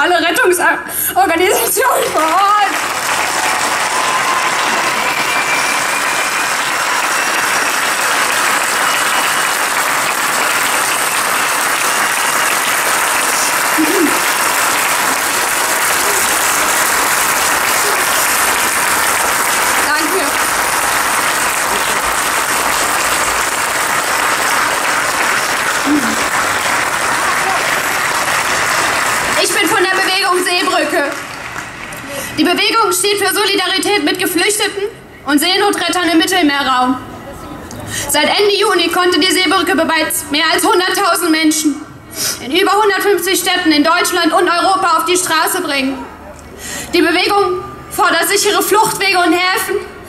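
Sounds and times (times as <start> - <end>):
crowd applauding: 1.4 - 32.6.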